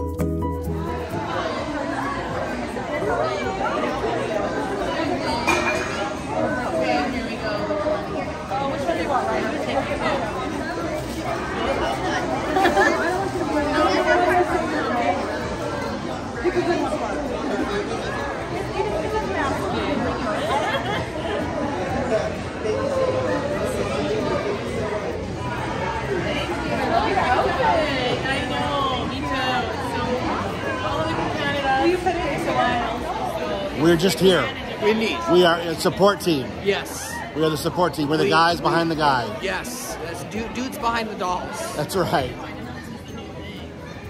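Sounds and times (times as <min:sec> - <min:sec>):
crowd chatter: 0:00.0 - 0:44.0.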